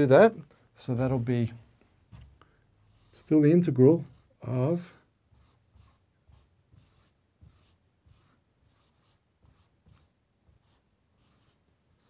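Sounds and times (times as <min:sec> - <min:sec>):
marker pen writing on whiteboard: 0:02.1 - 0:03.4, 0:04.0 - 0:12.0.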